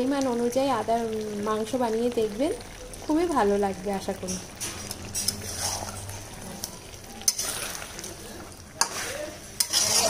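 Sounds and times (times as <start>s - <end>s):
meat sizzling in oil: 0.0s - 10.0s
metal spatula scraping pan: 4.2s - 10.0s.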